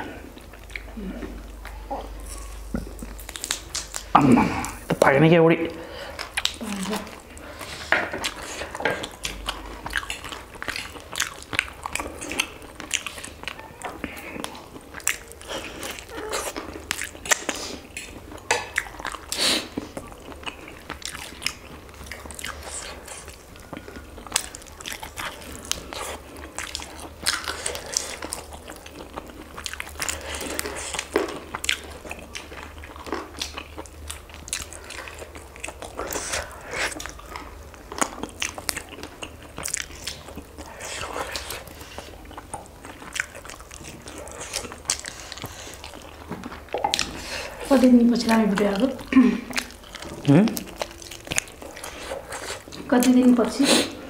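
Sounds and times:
chewing crunchy chicken: 0:00.0 - 0:05.2, 0:06.0 - 0:54.0.

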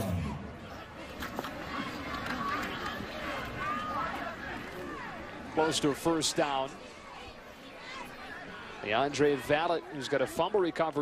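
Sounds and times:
crowd shouting: 0:00.0 - 0:10.6
steady crowd roar: 0:00.0 - 0:11.0.

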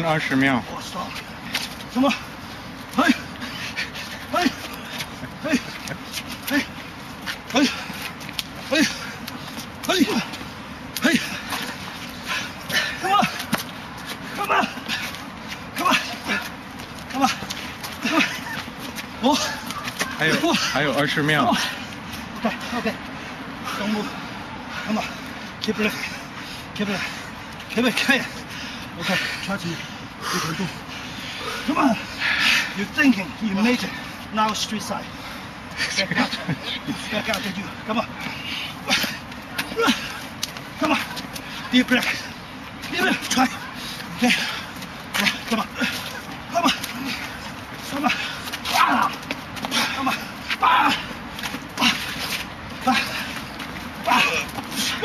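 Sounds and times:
man shouting: 0:02.9 - 0:03.3, 0:04.3 - 0:04.7, 0:09.9 - 0:10.4, 0:11.0 - 0:11.6, 0:12.8 - 0:13.4, 0:14.3 - 0:15.0, 0:15.8 - 0:16.4, 0:19.2 - 0:21.7, 0:40.8 - 0:42.2, 0:42.9 - 0:44.6, 0:45.2 - 0:47.2, 0:47.9 - 0:49.2, 0:49.8 - 0:51.1, 0:54.0 - 0:55.0.

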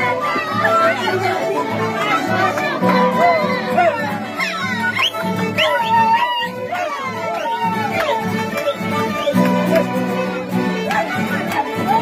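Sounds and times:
strummed acoustic guitars: 0:00.0 - 0:12.0
violin sliding notes: 0:00.0 - 0:12.0.

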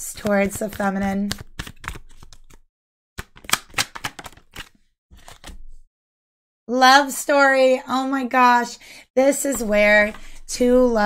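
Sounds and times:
cards being shuffled: 0:00.1 - 0:02.6, 0:03.2 - 0:05.8.

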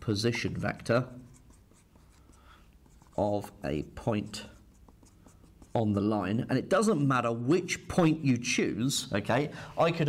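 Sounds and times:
marker scratching on whiteboard: 0:00.3 - 0:06.9.

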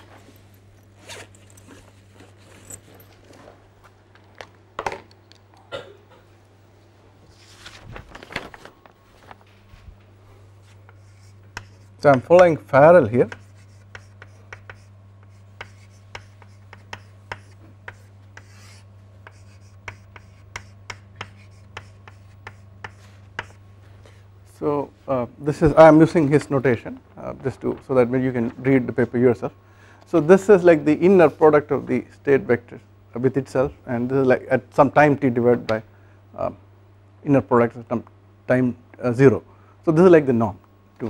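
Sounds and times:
scraping and rustling handling: 0:00.0 - 0:04.6, 0:07.2 - 0:12.2
low electrical hum: 0:00.0 - 0:41.0
chalk tapping and scraping: 0:10.6 - 0:24.2.

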